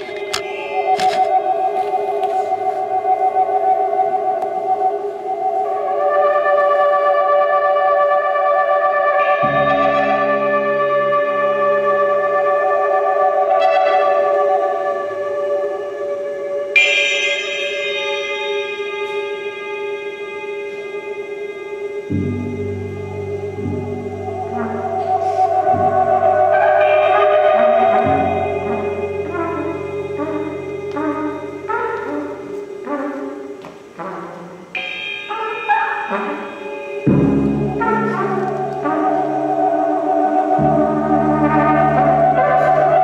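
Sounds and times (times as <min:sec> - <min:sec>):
low notes cluster: 0:00.0 - 0:43.0
trumpet and reed drone: 0:00.0 - 0:43.0.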